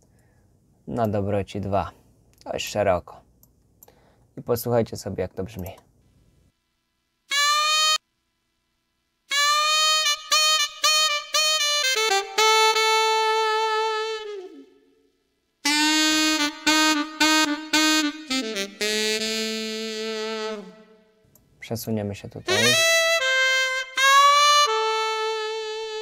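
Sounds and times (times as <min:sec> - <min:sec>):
keyboard saxophone melody: 0:07.3 - 0:08.0, 0:09.3 - 0:21.2, 0:22.5 - 0:26.0.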